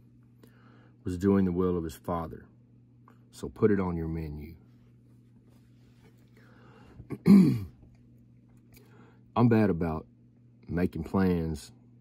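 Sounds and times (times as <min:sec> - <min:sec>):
man clearing his throat: 0:07.1 - 0:07.8.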